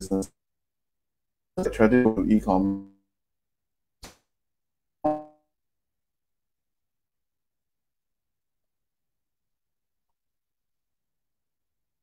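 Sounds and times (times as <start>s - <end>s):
short pitched tone: 5.0s - 5.4s.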